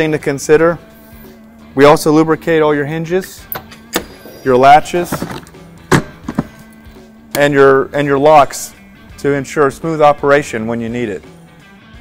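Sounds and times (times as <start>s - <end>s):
background music: 0.0s - 12.0s
luggage latches clicking: 3.5s - 6.7s.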